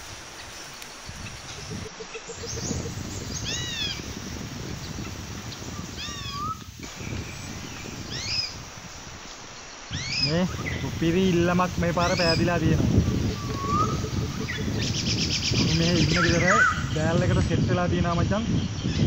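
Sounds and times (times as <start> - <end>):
animal calls: 1.2 - 4.1, 9.9 - 11.0, 11.9 - 17.0.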